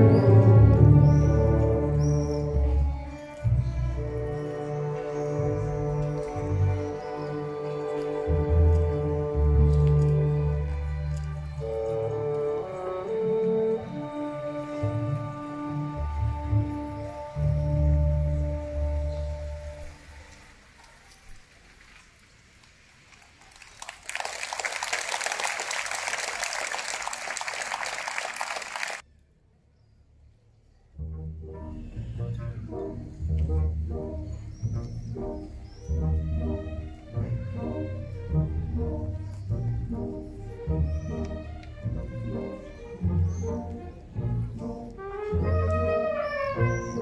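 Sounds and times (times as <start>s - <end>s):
low strings bowing rhythmically: 0.0s - 20.1s, 31.0s - 47.0s
orchestra low chord: 0.0s - 20.3s, 31.0s - 47.0s
applause: 23.1s - 29.0s.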